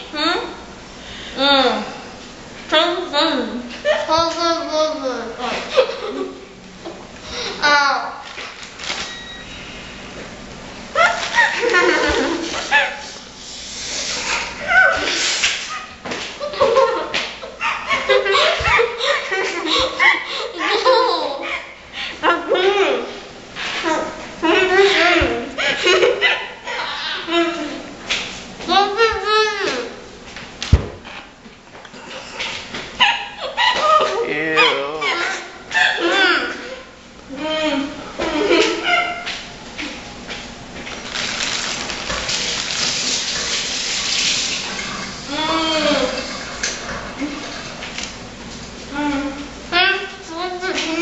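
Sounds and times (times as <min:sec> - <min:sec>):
women laughing with full mouths: 0:11.0 - 0:12.8.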